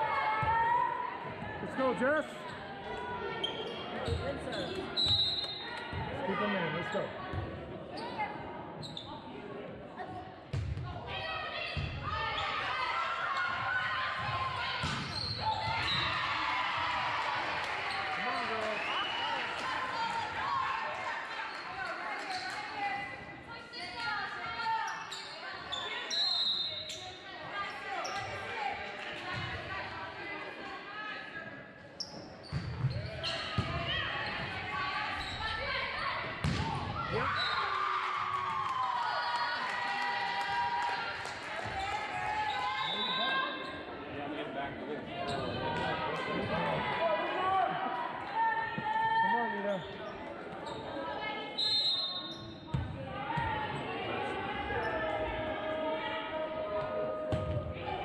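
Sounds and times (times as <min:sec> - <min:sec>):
spectators chattering and shouting: 0:00.0 - 0:58.0.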